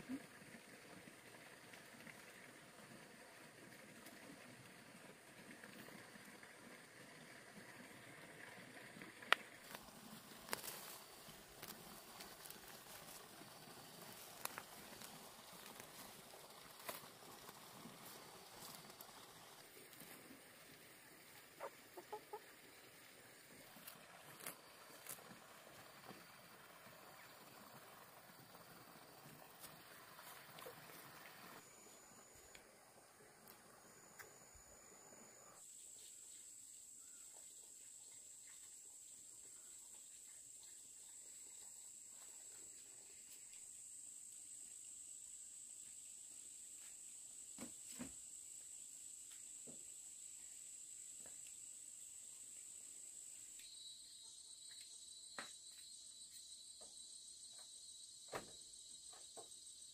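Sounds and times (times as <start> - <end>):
snapping and rustling of plants: 9.6 - 13.4, 14.0 - 19.2, 23.8 - 25.3
chickens clucking: 21.4 - 22.8.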